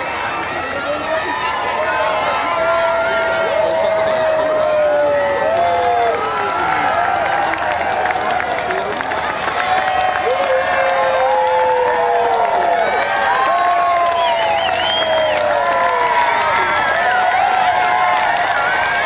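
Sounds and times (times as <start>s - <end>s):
crowd cheering and clapping: 0.0s - 19.0s.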